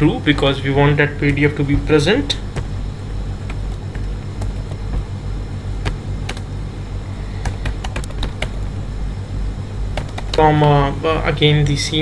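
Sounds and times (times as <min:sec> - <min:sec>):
low background rumble: 0:00.0 - 0:12.0
computer keyboard keystrokes: 0:05.8 - 0:06.5, 0:07.4 - 0:08.7, 0:10.0 - 0:10.4.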